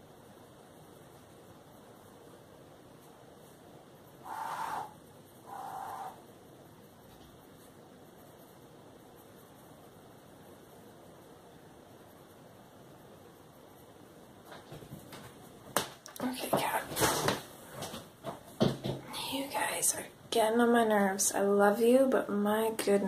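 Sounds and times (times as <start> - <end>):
soft knocks: 14.5 - 19.1.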